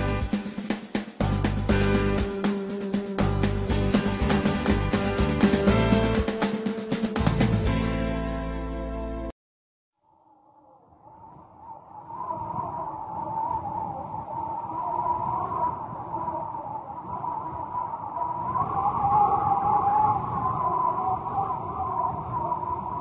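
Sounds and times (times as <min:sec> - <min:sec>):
howling wind: 0:10.0 - 0:23.0.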